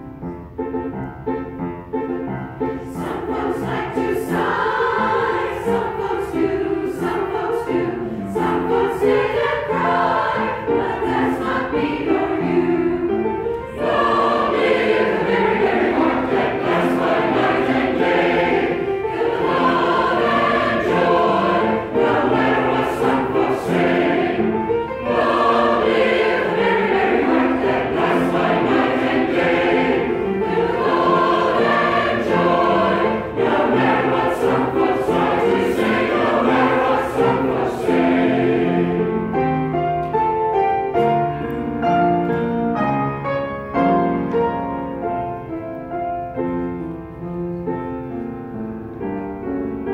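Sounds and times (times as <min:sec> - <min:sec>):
men's choir singing: 0:02.9 - 0:39.2.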